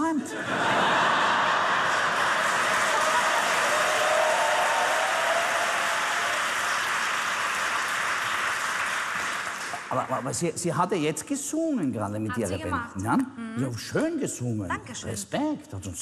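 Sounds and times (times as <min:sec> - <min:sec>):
audience laughing: 0:00.3 - 0:03.7
audience applauding: 0:00.8 - 0:10.5.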